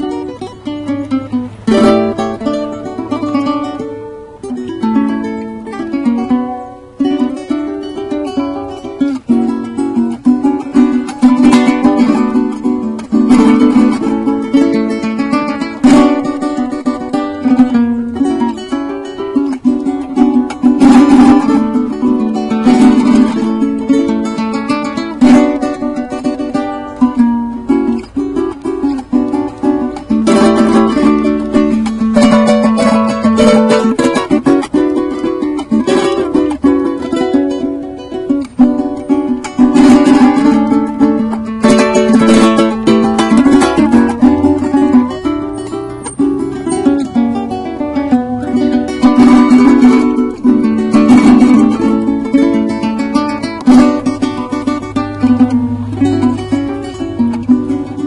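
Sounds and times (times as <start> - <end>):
small guitar melody and strumming: 0.0 - 58.0.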